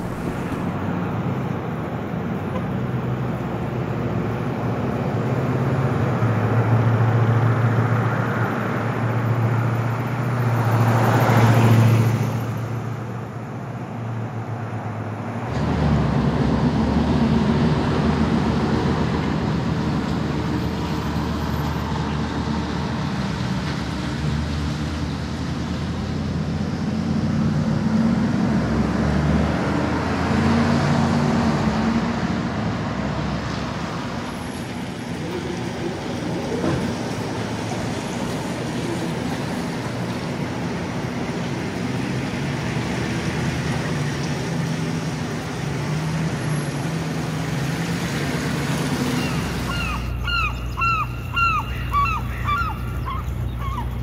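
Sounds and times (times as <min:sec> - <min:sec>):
vehicle passing close by: 0:00.0 - 0:12.9, 0:26.2 - 0:54.0
road traffic engine hum: 0:00.0 - 0:54.0.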